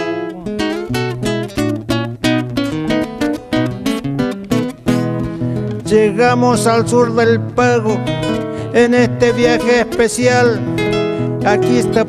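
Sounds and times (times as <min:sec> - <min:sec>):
acoustic guitar playing: 0:00.0 - 0:12.0.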